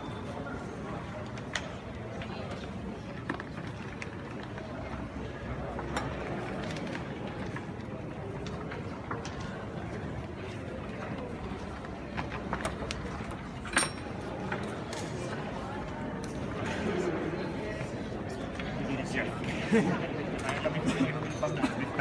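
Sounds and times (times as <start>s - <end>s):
background chatter of voices: 0.0s - 22.0s.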